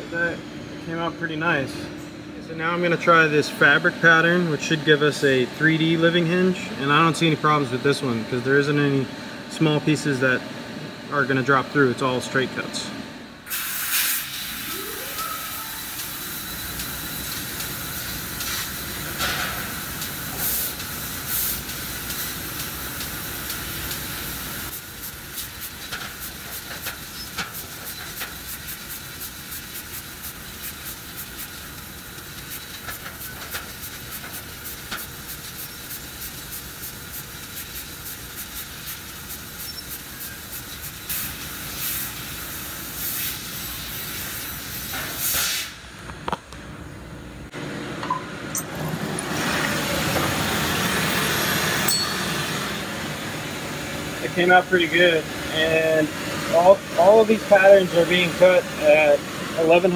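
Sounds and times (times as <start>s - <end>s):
hiss of cutting gas: 13.5s - 45.8s.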